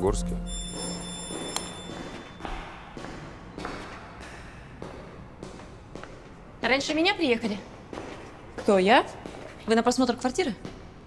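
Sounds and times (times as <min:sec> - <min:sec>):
electric doorbell ringing: 0:00.4 - 0:02.5.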